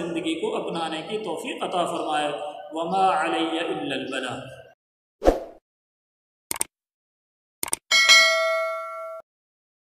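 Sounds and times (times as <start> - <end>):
notification bell ding: 7.9 - 9.2.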